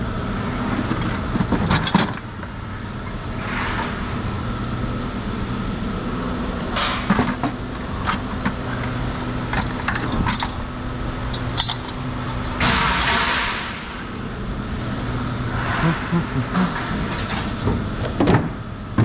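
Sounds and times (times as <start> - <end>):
scrap metal clanking in buckets: 16.5 - 17.7.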